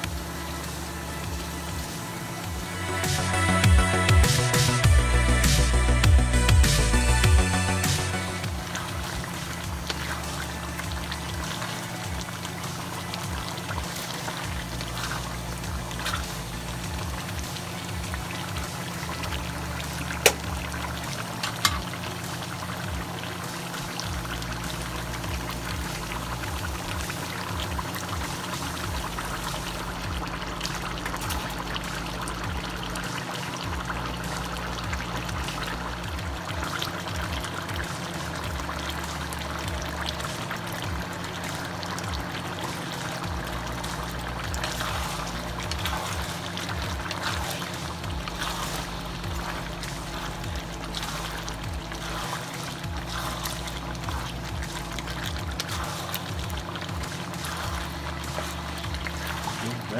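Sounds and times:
background music with bass: 0.0 - 59.9
food bubbling and sizzling in wok: 0.0 - 59.9.

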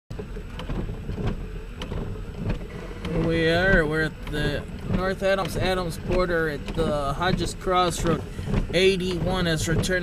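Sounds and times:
car engine idling: 0.1 - 10.0
windshield wiper sweeping: 0.1 - 10.0.

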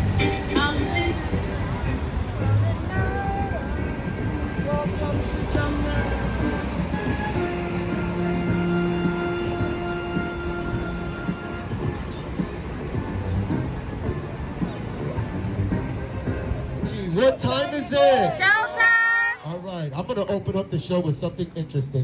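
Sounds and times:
vehicle rumble in traffic: 0.0 - 18.6
music: 0.0 - 19.4.

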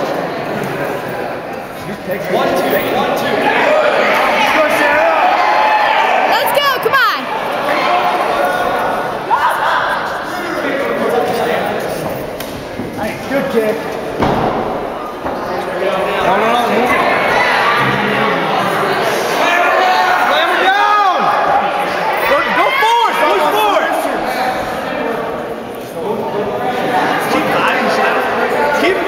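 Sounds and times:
indistinct background talk: 0.0 - 29.0.

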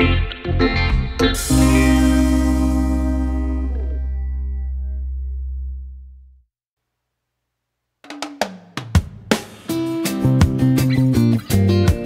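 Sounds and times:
music: 0.0 - 5.3, 8.1 - 12.0
drum fill: 1.4 - 5.1, 8.0 - 11.2.

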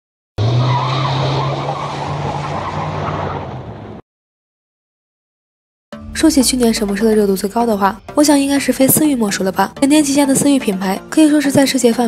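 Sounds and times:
car tyres squealing: 0.4 - 4.0.

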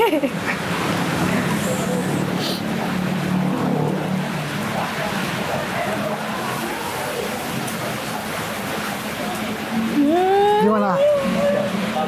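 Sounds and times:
heavy rain hissing: 0.7 - 3.5
faint voices: 1.2 - 2.9, 4.2 - 12.0.

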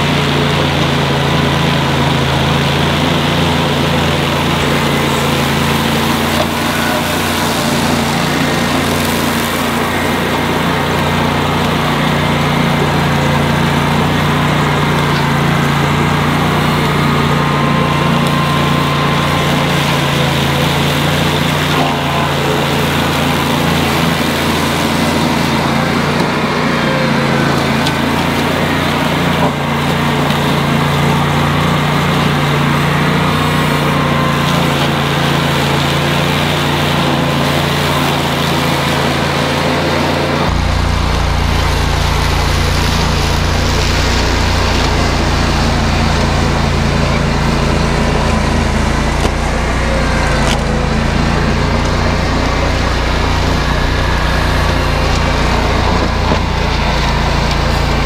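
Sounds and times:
diesel tractor engine under load: 0.0 - 58.0
mower cutting through brush: 0.0 - 58.0.

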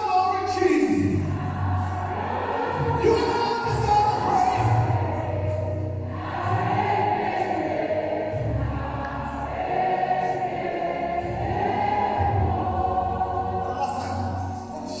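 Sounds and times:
church choir singing a hymn: 0.0 - 15.0.

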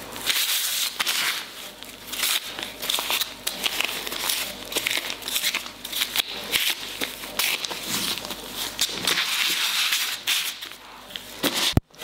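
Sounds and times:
plastic gloves crinkling: 0.0 - 12.0.

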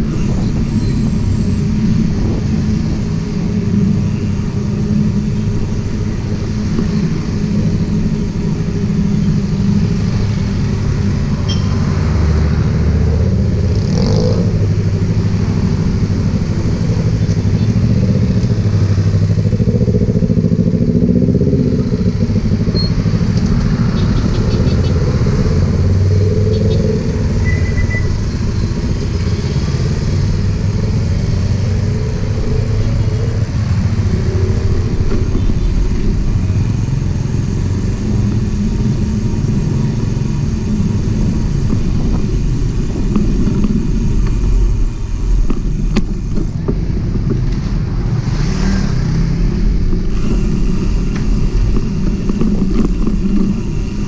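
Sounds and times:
motorcycle and car engines passing: 0.0 - 54.0
steady low traffic rumble: 0.0 - 54.0
brief short tone: 11.4 - 11.8, 22.8 - 23.0, 27.4 - 28.1.

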